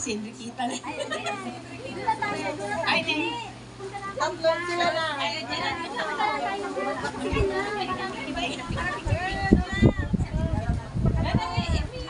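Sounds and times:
murmur of overlapping voices: 0.0 - 12.0.

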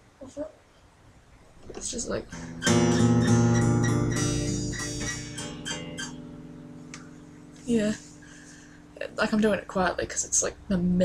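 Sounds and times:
acoustic guitar strumming: 1.8 - 9.9
picked guitar notes: 2.2 - 9.6.

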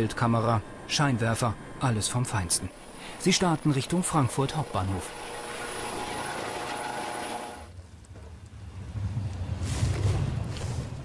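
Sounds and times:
helicopter turbine whine: 0.0 - 7.8
low rumble: 7.7 - 11.0.

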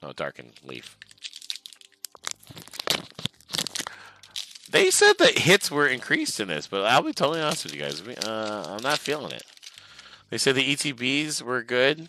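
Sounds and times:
foil wrapper crinkling and tearing: 0.6 - 6.4, 7.0 - 10.0.

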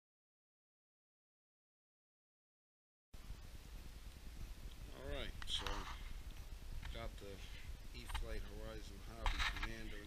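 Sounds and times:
noisy rustle: 3.2 - 10.0.

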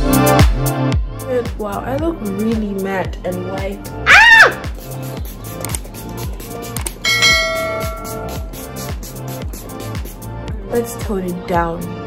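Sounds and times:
bright bell ding: 7.0 - 8.6.

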